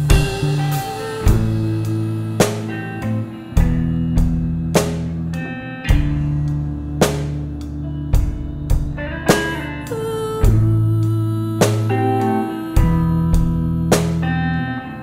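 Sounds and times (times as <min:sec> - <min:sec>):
guitar: 0:00.0 - 0:15.0
held bass notes: 0:00.0 - 0:15.0.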